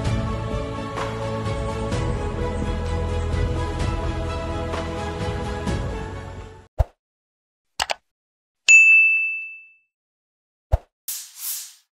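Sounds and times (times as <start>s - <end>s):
notification bell ding: 8.7s - 9.9s.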